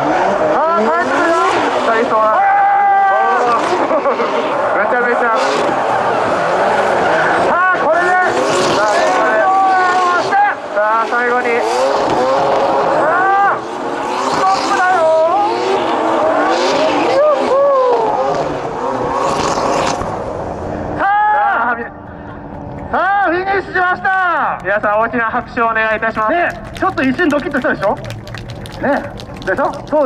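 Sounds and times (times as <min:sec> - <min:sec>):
car engines revving: 0:00.0 - 0:30.0.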